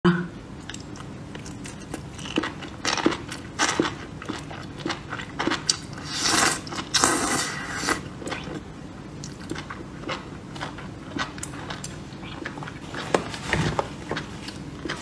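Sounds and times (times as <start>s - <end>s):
wet chewing: 0.6s - 15.0s.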